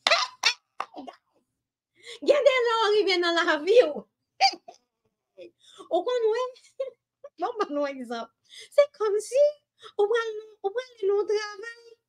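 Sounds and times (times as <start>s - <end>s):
woman speaking: 2.2s - 4.1s, 5.8s - 6.7s, 7.3s - 12.0s.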